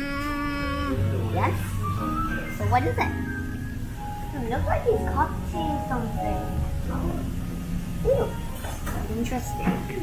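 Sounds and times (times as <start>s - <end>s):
person saying ooh: 0.0s - 1.0s
low room hum: 0.0s - 10.0s.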